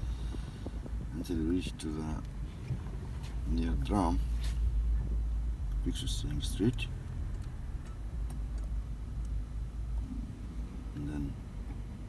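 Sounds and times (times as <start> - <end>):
car engine running at low revs: 0.0 - 12.0.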